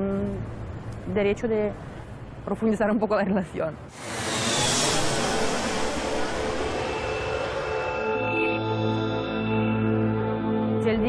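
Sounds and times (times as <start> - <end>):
rushing whoosh: 3.9 - 9.7
soft ambient music: 5.4 - 11.0.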